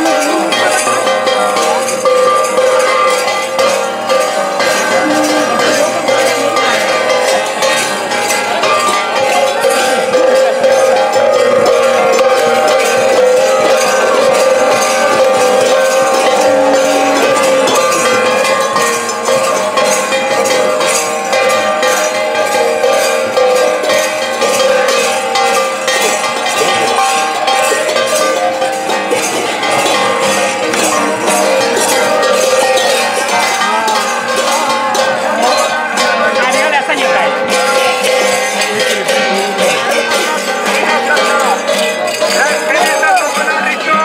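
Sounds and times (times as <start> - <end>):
hand cymbals ringing: 0.0 - 44.0
sustained sung line: 0.0 - 44.0.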